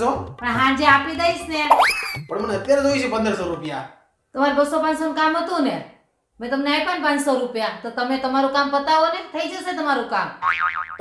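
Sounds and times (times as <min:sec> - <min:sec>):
cartoon boing sound effect: 0:01.7 - 0:02.3, 0:10.4 - 0:11.0.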